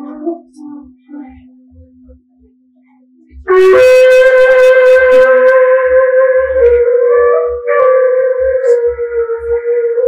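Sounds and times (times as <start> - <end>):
pipe horn blowing steady note: 3.4 - 10.0.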